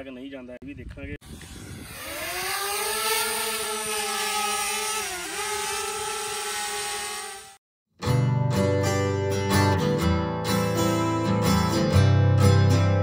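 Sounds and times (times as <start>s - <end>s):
drone propellers buzzing: 1.2s - 7.6s.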